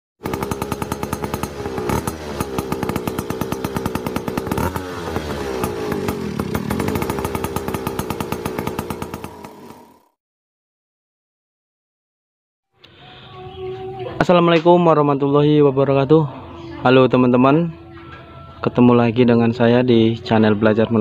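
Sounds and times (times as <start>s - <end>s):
motor scooter engine revving: 0.2s - 10.2s.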